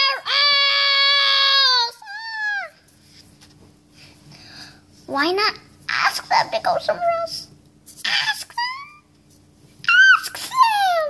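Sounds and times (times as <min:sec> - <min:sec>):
child shouting and wailing: 0:00.0 - 0:02.8, 0:09.9 - 0:11.0
faint steady hum: 0:00.0 - 0:11.0.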